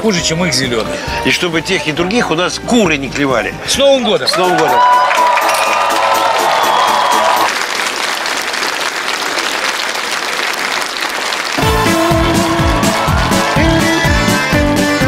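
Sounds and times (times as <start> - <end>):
music playing: 0.0 - 7.6, 11.5 - 15.0
audience applauding and cheering: 4.2 - 15.0
band playing upbeat tune: 11.5 - 15.0.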